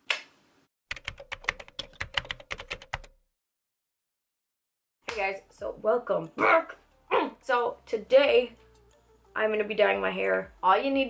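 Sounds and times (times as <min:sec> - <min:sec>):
fast keyboard typing clicks: 0:00.9 - 0:03.2.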